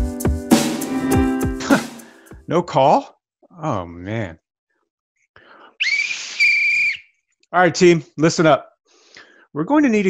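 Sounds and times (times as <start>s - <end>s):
sports whistle blast: 5.8s - 7.0s.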